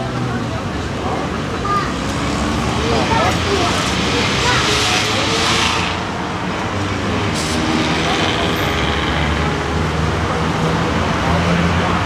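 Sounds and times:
low traffic rumble: 0.0 - 12.0
people talking: 0.0 - 12.0.

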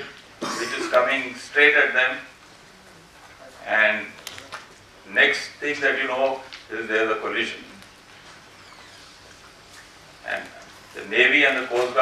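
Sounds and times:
low even hiss: 0.0 - 12.0.

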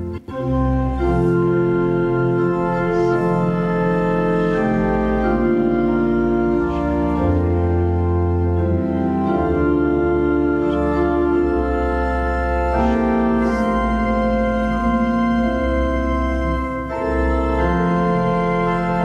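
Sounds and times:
church organ playing a hymn: 0.0 - 19.0.

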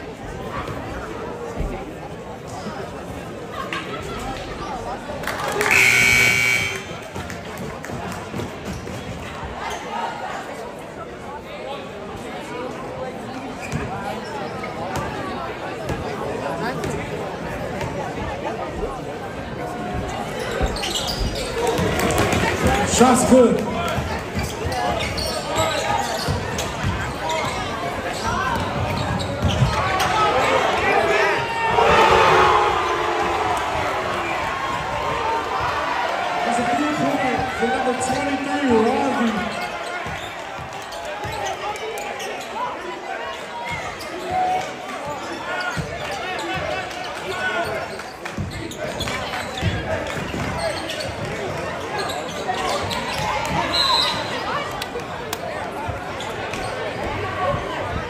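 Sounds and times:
spectators talking and shouting: 0.0 - 58.0.

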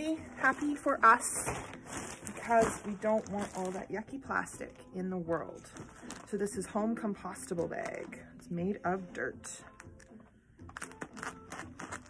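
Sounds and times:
plastic bag crinkling: 0.4 - 4.2.

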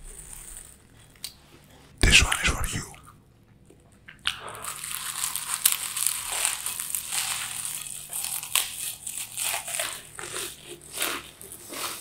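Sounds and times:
chips being crunched: 4.6 - 12.0.

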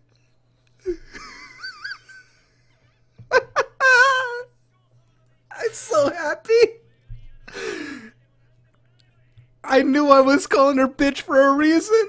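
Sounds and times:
man wheezing laugh: 0.8 - 2.6, 3.3 - 4.5.

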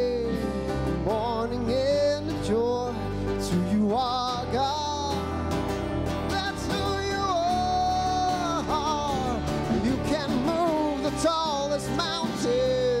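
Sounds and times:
instrumental accompaniment with bass: 0.0 - 13.0.

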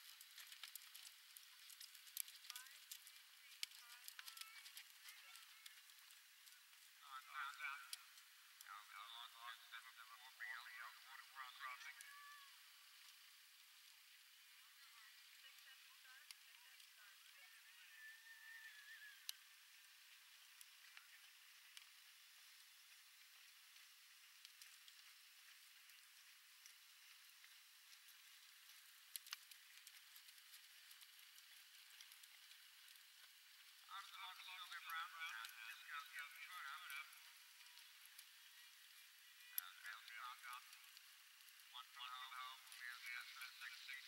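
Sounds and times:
scattered clicks: 0.0 - 12.1, 23.8 - 44.0
faint outdoor hiss: 0.0 - 44.0.

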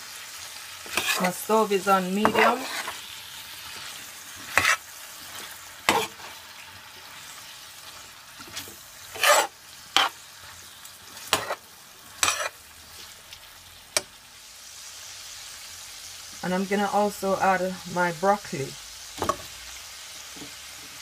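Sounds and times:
stir-fry sizzling in a pan: 0.0 - 21.0
spatula scraping and knocking pan: 0.8 - 6.4, 8.0 - 10.2, 11.1 - 13.1.

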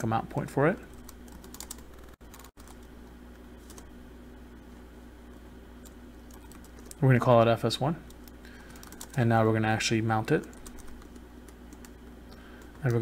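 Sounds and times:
steady low hum: 0.0 - 13.0
computer keyboard typing: 0.9 - 2.9, 5.8 - 7.0, 8.1 - 9.2, 10.4 - 13.0.

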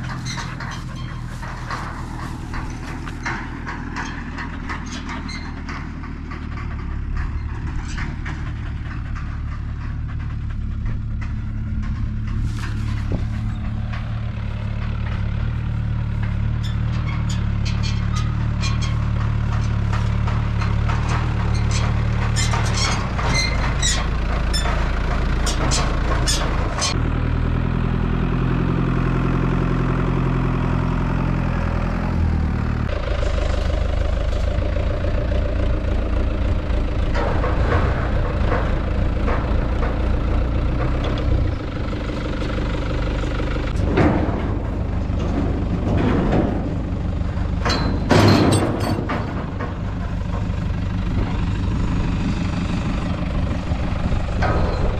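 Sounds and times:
metallic clanks and rattles: 0.0 - 27.1, 32.8 - 54.9
tractor engine running: 0.0 - 54.9.

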